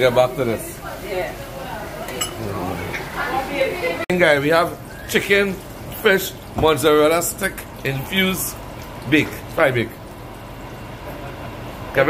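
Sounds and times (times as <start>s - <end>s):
dough sizzling in hot oil: 0.0s - 12.0s.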